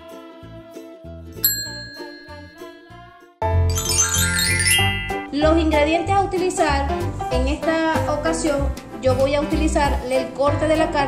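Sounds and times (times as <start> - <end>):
bright bell-like ding: 1.5 - 2.8
upbeat intro jingle: 3.6 - 5.6.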